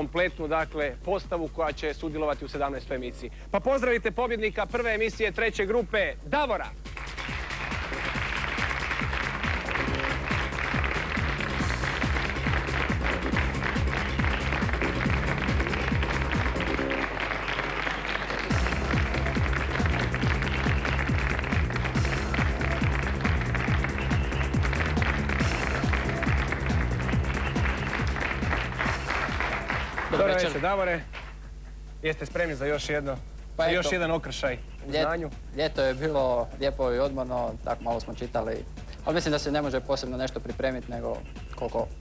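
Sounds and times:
repeating entrance music: 6.7 - 30.5
studio audience applauding: 6.9 - 31.0.

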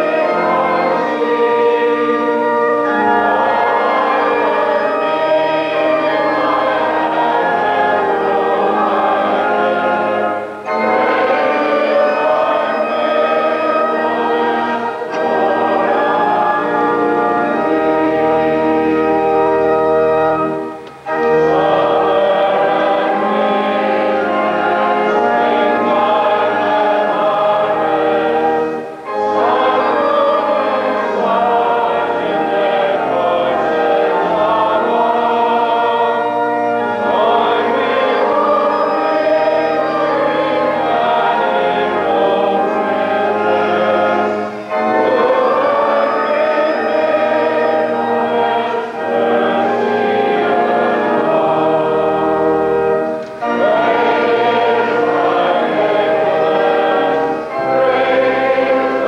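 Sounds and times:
choir singing held chords: 0.0 - 59.0.

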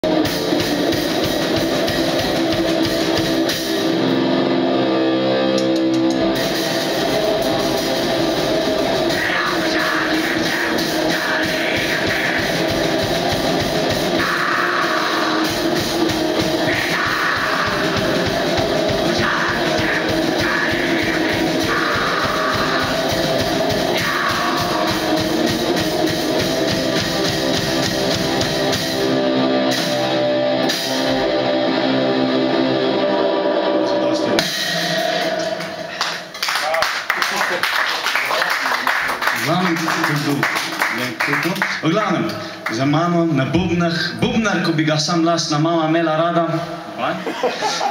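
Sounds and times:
distorted electric guitar: 0.0 - 36.6
drum kit: 0.0 - 46.9
vocals: 8.8 - 28.5, 33.0 - 36.4, 39.4 - 47.9.

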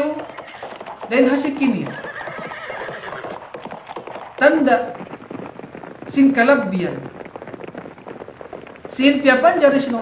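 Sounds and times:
horses galloping: 0.0 - 10.0.

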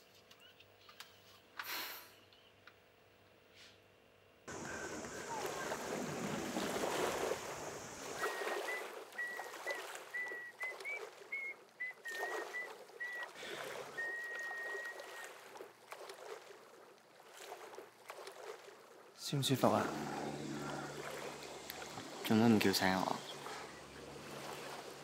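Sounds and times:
small waves lapping on shore: 4.5 - 25.0.

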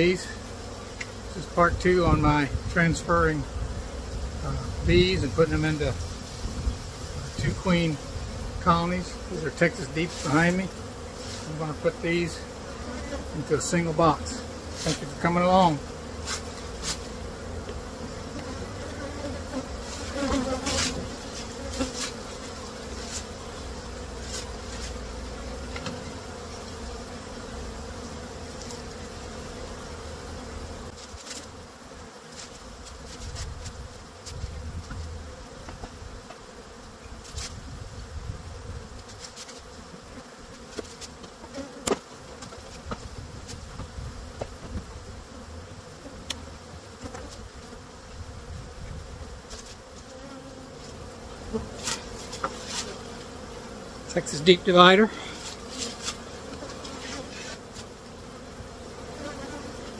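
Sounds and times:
bees buzzing: 0.0 - 59.9
wooden hive equipment knocking: 40.7 - 44.9.

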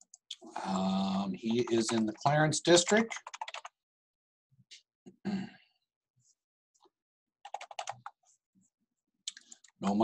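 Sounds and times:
computer keyboard keystrokes: 1.5 - 3.7, 7.4 - 8.2.

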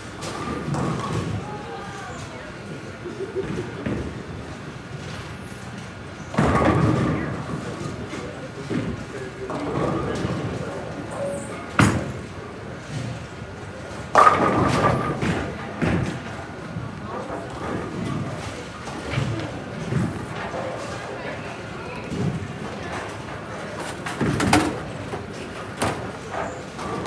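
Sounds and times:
bowling balls thudding on lanes: 0.2 - 2.3, 6.3 - 11.0, 13.9 - 27.0
background chatter: 0.3 - 6.2, 6.9 - 27.0.

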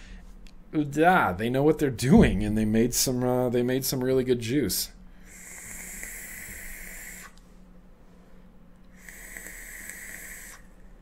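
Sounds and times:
air hissing through atomizer: 5.2 - 7.5, 8.9 - 11.0.

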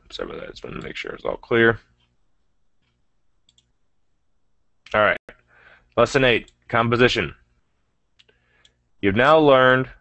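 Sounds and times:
computer mouse clicks: 2.8 - 3.8.

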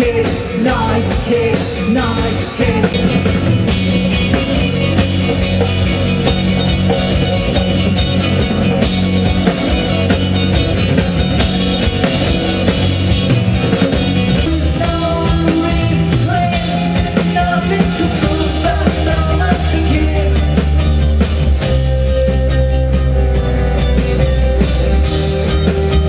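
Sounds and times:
bass guitar: 0.0 - 26.0
distorted electric guitar: 0.0 - 26.0
drum kit: 0.0 - 26.0.

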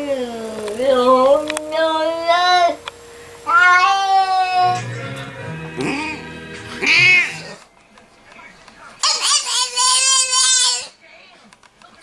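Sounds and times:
cat meowing: 3.5 - 4.8, 6.8 - 7.6.

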